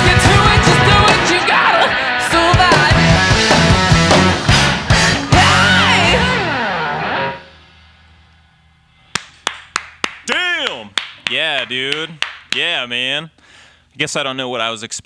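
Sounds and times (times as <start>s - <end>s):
distorted electric guitar chord: 0.1s - 9.1s
people clapping: 9.1s - 12.8s.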